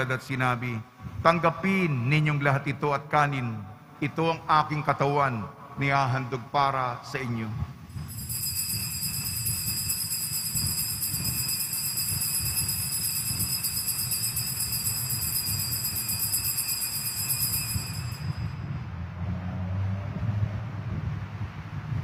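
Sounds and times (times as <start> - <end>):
altar bells jingling: 7.9 - 18.7.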